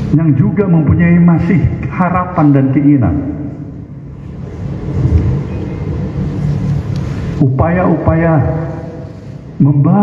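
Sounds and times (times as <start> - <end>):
low rumble: 3.0 - 9.5.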